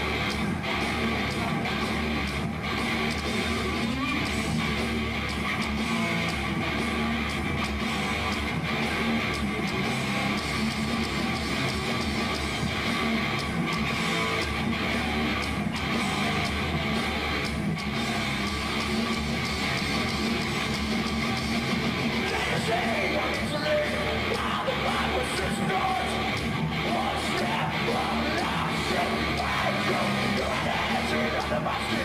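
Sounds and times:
loud electric guitars: 0:00.0 - 0:32.0.

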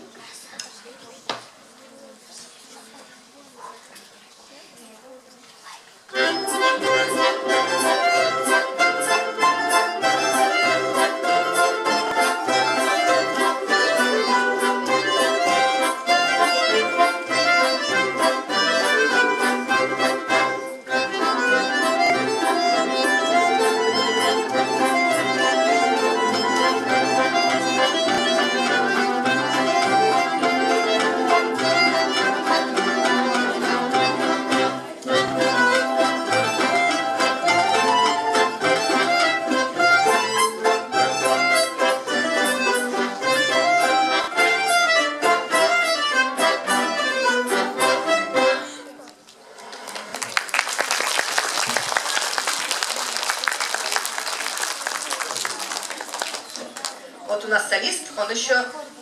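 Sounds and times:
accordion melody: 0:06.1 - 0:49.1
plucked string orchestra: 0:06.1 - 0:50.6.

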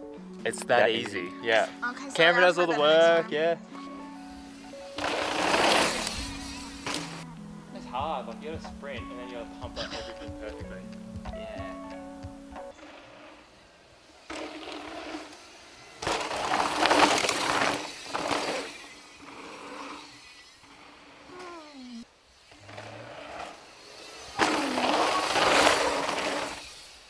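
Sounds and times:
bike tyres skidding on dirt: 0:04.3 - 0:07.3, 0:12.7 - 0:21.6, 0:22.3 - 0:27.0.

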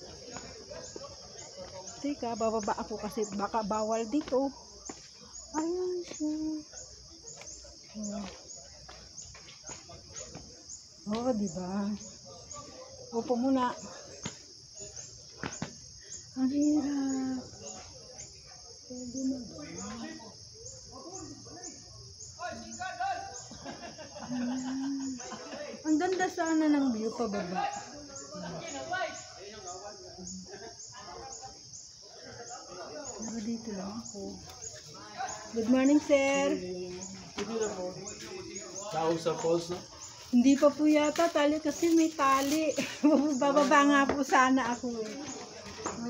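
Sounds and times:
insects buzzing: 0:00.0 - 0:46.0.

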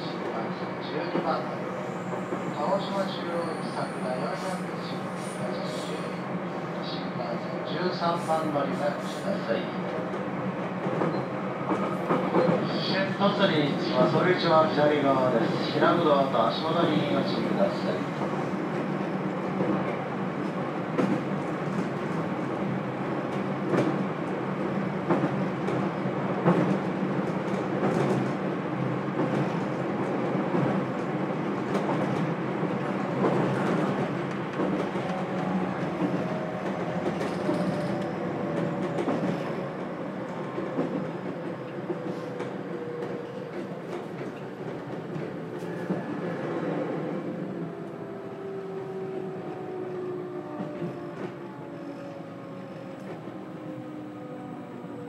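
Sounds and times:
train announcement: 0:33.3 - 0:44.3.

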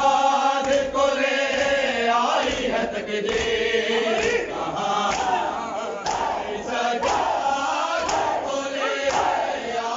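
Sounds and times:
men chanting a lament: 0:00.0 - 0:09.9.

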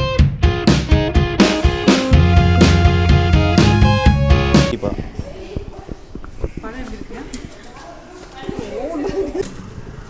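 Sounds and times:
people talking quietly: 0:04.7 - 0:10.0.

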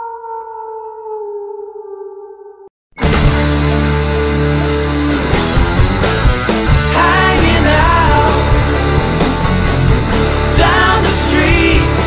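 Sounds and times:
loud rock music: 0:03.0 - 0:12.0.

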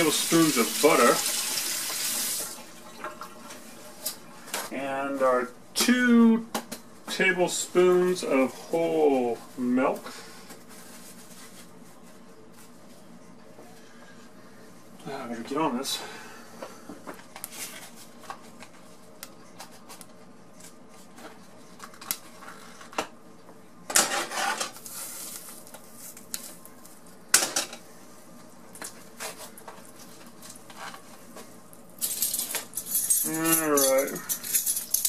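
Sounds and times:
person mumbling: 0:33.2 - 0:34.3.

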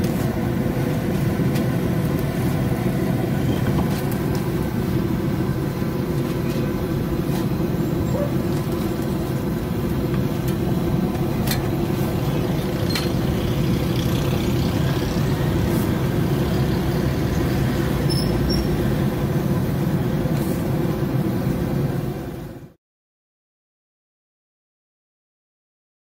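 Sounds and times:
constant hum: 0:00.0 - 0:22.8.

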